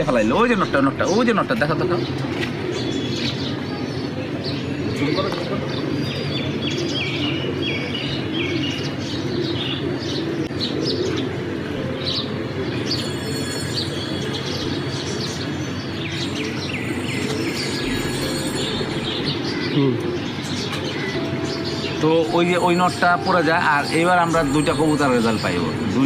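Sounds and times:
birds chirping: 0:00.0 - 0:26.0
pigeons cooing: 0:00.0 - 0:26.0.

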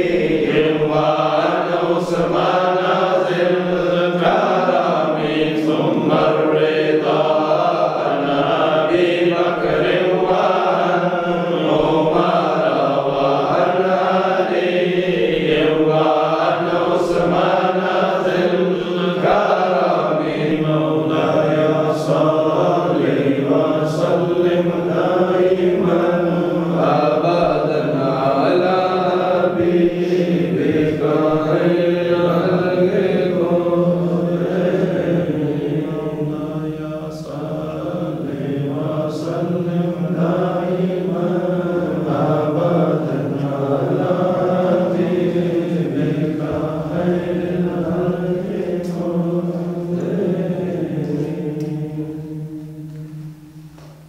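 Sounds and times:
men chanting: 0:00.0 - 0:52.4.

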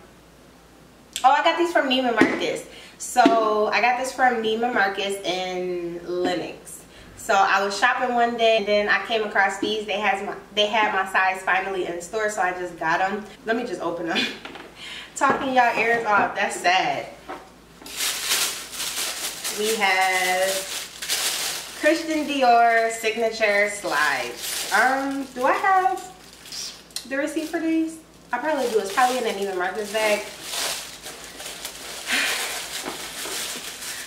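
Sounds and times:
tissue paper rustling: 0:17.8 - 0:34.0.

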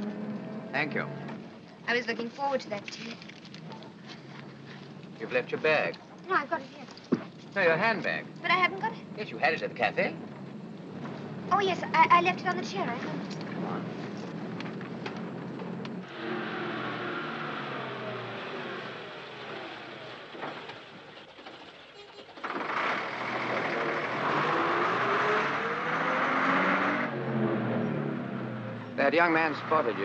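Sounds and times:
bus engine running: 0:00.0 - 0:21.8, 0:22.4 - 0:30.0.

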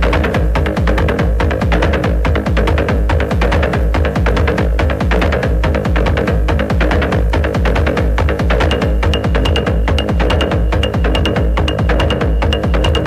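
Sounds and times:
kick drum: 0:00.0 - 0:13.0
hi-hat ticks: 0:00.1 - 0:13.0
held synth tone: 0:08.7 - 0:13.0.

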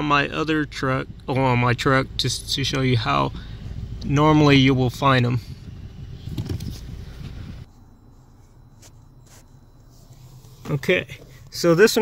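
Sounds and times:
camera handling rumble and rustle: 0:06.2 - 0:07.8.

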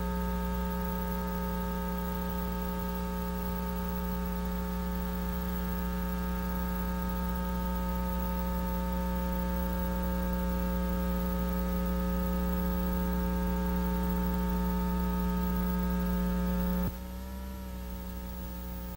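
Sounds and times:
electrical mains hum: 0:00.0 - 0:18.9.

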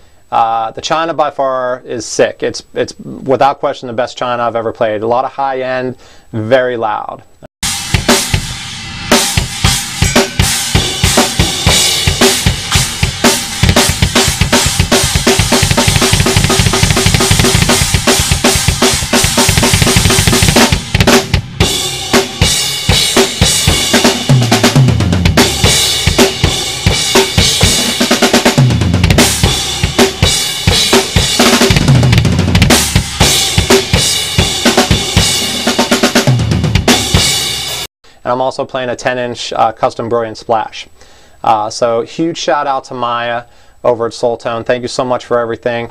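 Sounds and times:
loud cymbal crashes: 0:07.6 - 0:24.3
drum kit played fast: 0:07.6 - 0:37.9
tom drum fill: 0:07.6 - 0:37.9.

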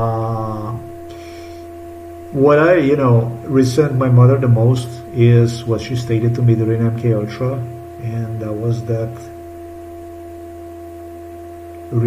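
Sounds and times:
steady hum with held tone: 0:00.0 - 0:12.0.

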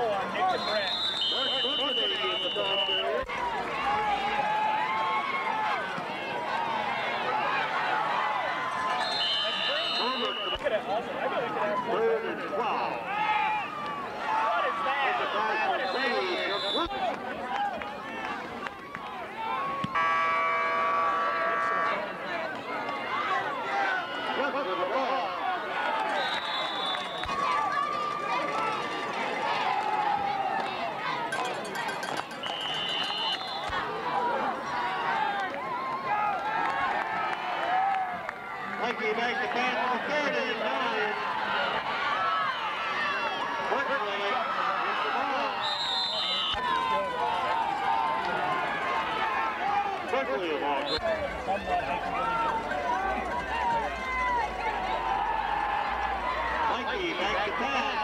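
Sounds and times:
spectators talking and calling out: 0:00.0 - 0:58.0
referee's whistle blasts: 0:00.4 - 0:03.2, 0:09.0 - 0:10.8, 0:15.7 - 0:17.0, 0:19.9 - 0:22.0, 0:26.1 - 0:27.4, 0:32.2 - 0:33.8, 0:45.5 - 0:47.0
held tone: 0:31.3 - 0:33.7.

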